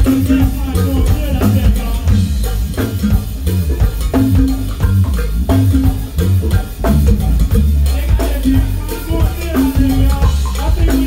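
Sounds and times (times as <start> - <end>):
sustained pitched notes: 0.0 - 10.9
drum kit beat: 0.0 - 11.0
heavy bass line: 0.0 - 11.0.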